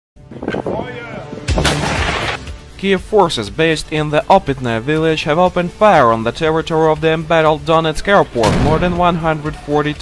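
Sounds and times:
voices or music: 0.6s - 10.0s
heavy gun blast: 8.4s - 9.2s.

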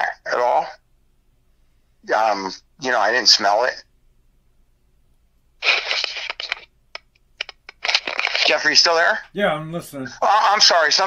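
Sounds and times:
crackling phone static: 5.6s - 9.3s.

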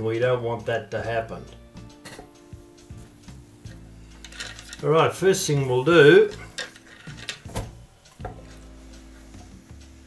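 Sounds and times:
wooden knocks and chain rattles: 3.7s - 5.0s, 5.6s - 8.4s.

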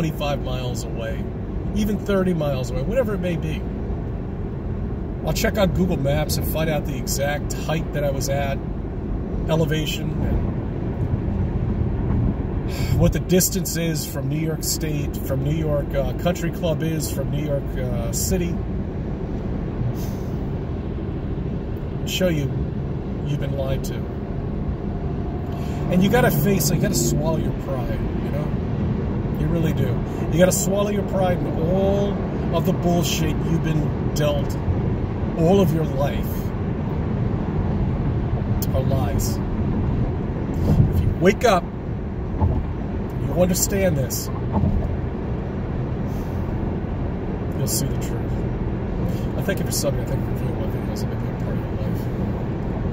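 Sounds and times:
car road and engine noise: 0.0s - 52.9s
brief hiss: 20.0s - 20.4s.

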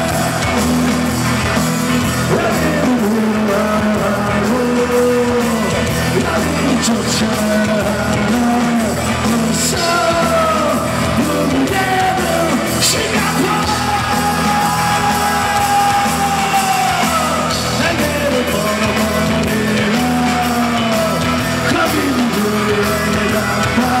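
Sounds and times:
drums: 0.0s - 24.0s
electric guitar: 0.0s - 24.0s
person singing shouted vocals: 2.3s - 24.0s.

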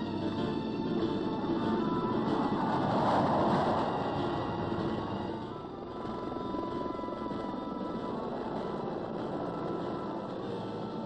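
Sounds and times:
background music: 0.0s - 11.0s
military aircraft engine: 0.0s - 11.0s.

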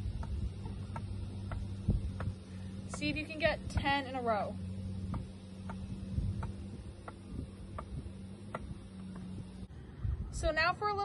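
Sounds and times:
low steady hum: 0.0s - 11.0s
tennis ball tapping racquet strings: 0.1s - 4.2s, 5.0s - 9.3s.

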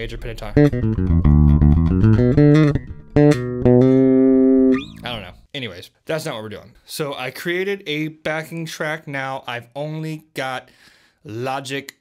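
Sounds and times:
bass guitar plucked notes: 0.0s - 5.4s.

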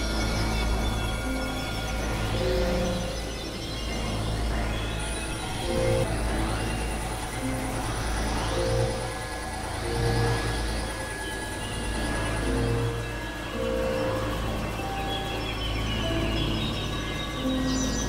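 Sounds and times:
deep synthesizer drone: 0.0s - 18.0s
rising synth sweeps: 0.0s - 18.0s.

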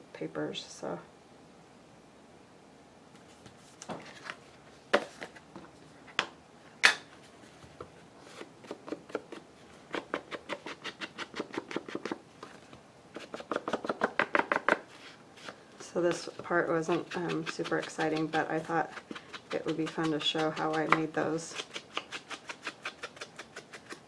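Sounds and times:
ink tool dabbing: 16.0s - 21.6s.

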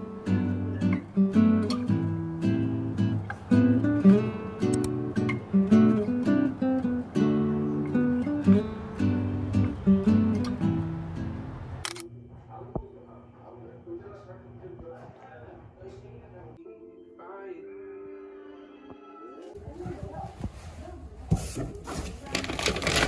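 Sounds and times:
plucked acoustic guitar music: 0.0s - 11.8s.

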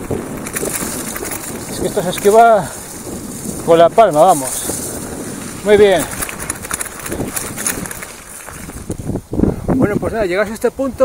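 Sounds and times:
bike rattling clicks and knocks: 0.0s - 9.2s
bike tyres on dirt trail: 0.0s - 9.8s.

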